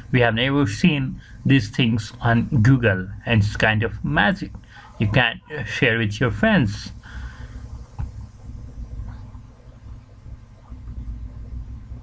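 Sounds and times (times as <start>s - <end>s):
faint hiss: 0.0s - 12.0s
low background rumble: 0.0s - 12.0s.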